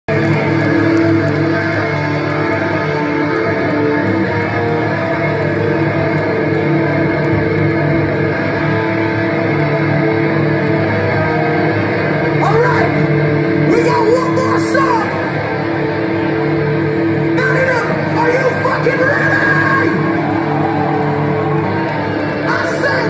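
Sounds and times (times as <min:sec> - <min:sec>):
electric guitars droning chord: 0:00.1 - 0:23.0.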